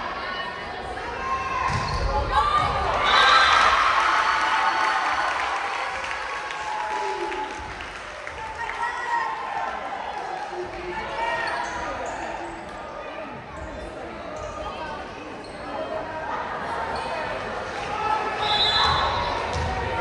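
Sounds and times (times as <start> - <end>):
crowd chatter in echoing hall: 0.0 - 20.0
volleyball bouncing on wooden floor: 19.5 - 19.9.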